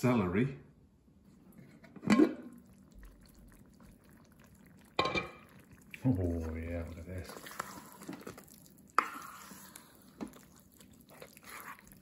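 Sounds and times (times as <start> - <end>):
glass lid clinking: 5.0 - 5.4.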